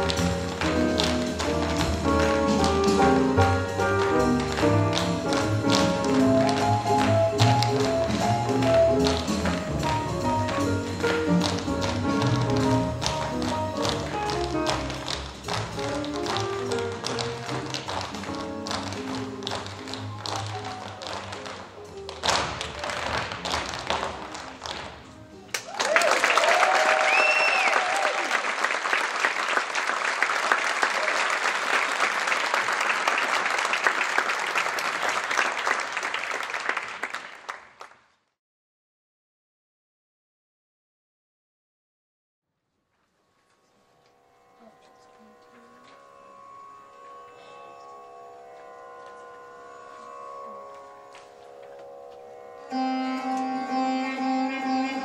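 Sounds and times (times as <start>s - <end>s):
tap shoes tapping: 0.0s - 25.0s
recorded music: 0.0s - 25.5s, 44.7s - 55.0s
audience applause and cheers: 19.8s - 21.6s, 25.4s - 37.9s.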